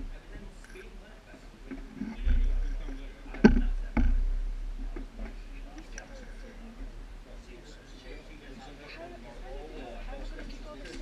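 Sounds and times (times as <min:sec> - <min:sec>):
faint voices: 0:00.0 - 0:11.0
sharp knocks: 0:01.7 - 0:05.4
low rumble: 0:01.8 - 0:07.3.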